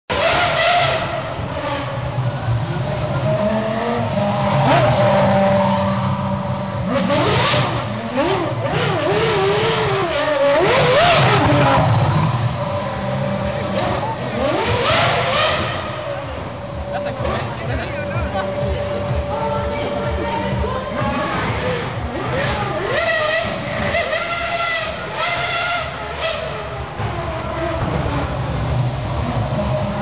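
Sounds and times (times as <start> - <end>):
racing car engine revving: 0.0 - 30.0
crowd voices: 0.1 - 30.0.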